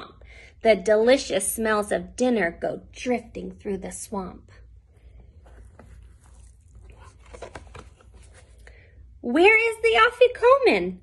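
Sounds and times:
paper rustling: 5.0s - 8.7s.

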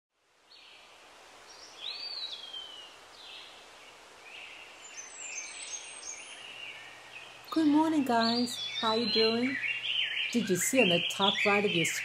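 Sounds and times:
faint steady hiss: 0.2s - 12.0s
birds chirping and whistling: 1.5s - 3.5s, 4.3s - 12.0s.

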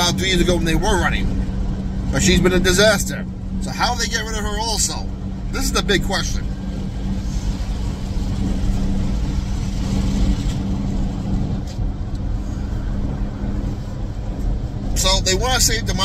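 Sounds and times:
car road and engine rumble: 0.0s - 16.0s.

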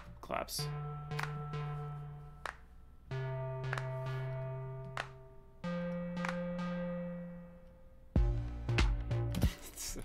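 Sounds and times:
sharp clap hits: 1.1s - 1.6s, 2.4s - 2.7s, 3.6s - 4.2s, 4.8s - 5.2s, 5.9s - 6.6s.

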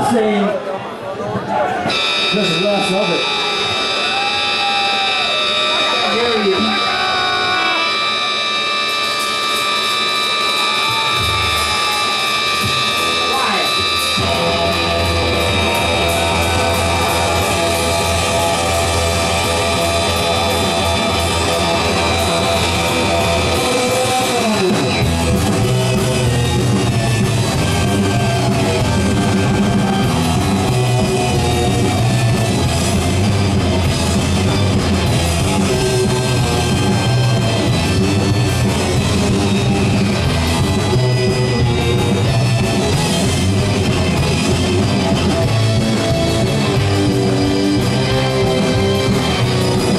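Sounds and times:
rock band with drums: 0.0s - 49.9s
bass guitar: 1.8s - 49.9s
organ chord: 1.9s - 49.9s.

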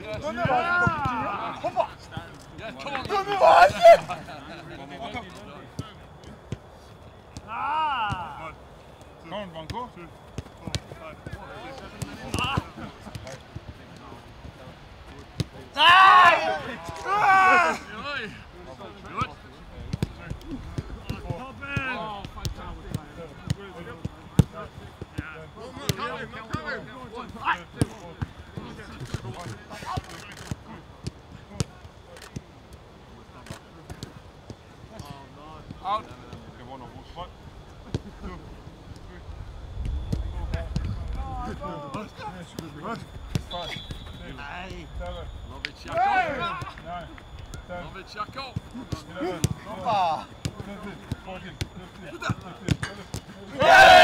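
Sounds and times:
players calling: 0.0s - 37.2s, 40.2s - 54.0s
loud shouts: 0.2s - 1.8s, 3.0s - 4.2s, 7.4s - 8.4s, 15.7s - 18.4s, 53.5s - 54.0s.

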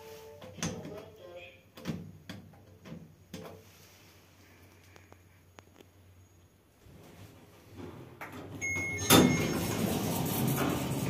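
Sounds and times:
lift mechanical rumble: 7.2s - 11.0s
electronic arrival beep: 8.6s - 9.6s.

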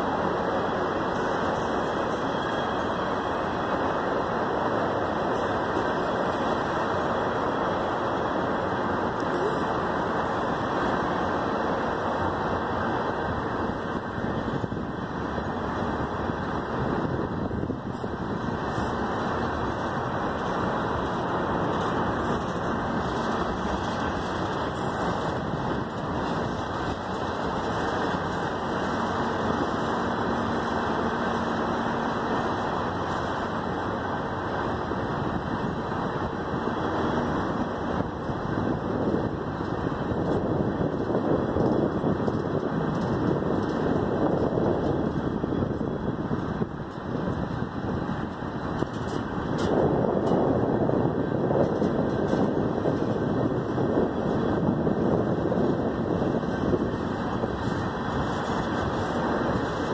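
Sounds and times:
freight train wheels rumbling: 0.0s - 59.9s.

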